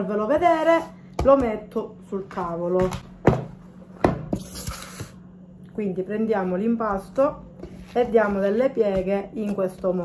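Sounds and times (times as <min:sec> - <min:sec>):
dough scraping in bowl: 0:06.8 - 0:10.0.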